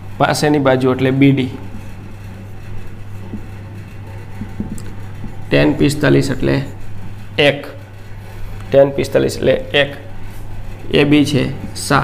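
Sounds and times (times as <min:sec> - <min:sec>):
low hum: 0:00.0 - 0:12.0
marker writing on whiteboard: 0:00.1 - 0:12.0.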